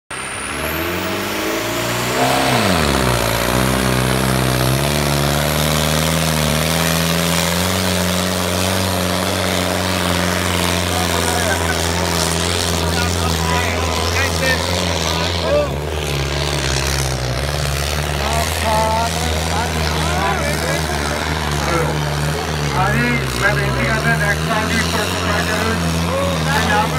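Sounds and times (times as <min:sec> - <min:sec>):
tractor diesel engine under load: 0:00.1 - 0:26.9
crowd voices: 0:00.7 - 0:17.4, 0:18.1 - 0:26.9.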